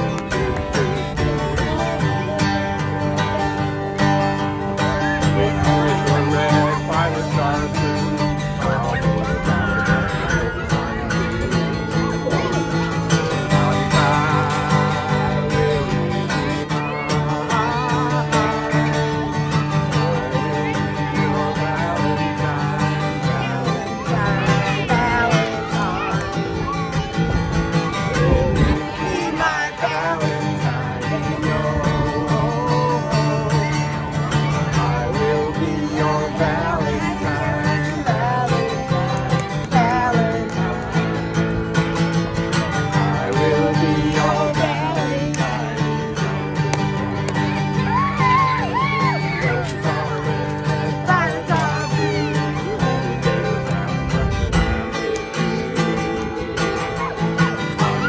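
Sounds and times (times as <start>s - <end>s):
man and women singing: 0.0s - 11.4s, 12.2s - 26.8s, 27.8s - 41.7s, 42.5s - 47.0s, 47.8s - 54.4s
acoustic guitar strumming: 0.0s - 58.0s.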